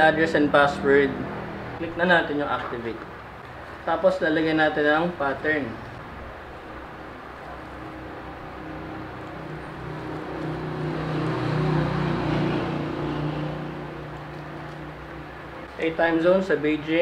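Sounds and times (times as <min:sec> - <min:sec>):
vehicle engine running: 0:06.3 - 0:15.8.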